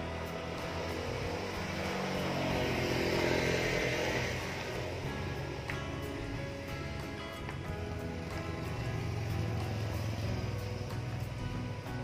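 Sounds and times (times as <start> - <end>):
background music: 0.0 - 12.0
motor vehicle passing by: 0.0 - 12.0.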